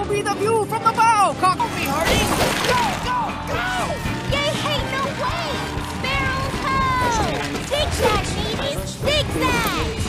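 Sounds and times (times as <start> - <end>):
cartoon background music: 0.0 - 10.0.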